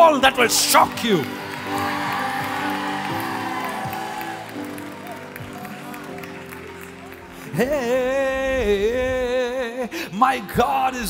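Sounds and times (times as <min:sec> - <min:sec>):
keyboard chords worship music: 0:00.0 - 0:11.0
people clapping: 0:00.1 - 0:08.4.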